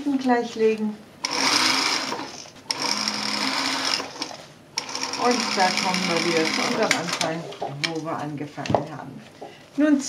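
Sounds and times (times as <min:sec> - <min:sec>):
sewing machine stitching leather: 0:01.2 - 0:07.3.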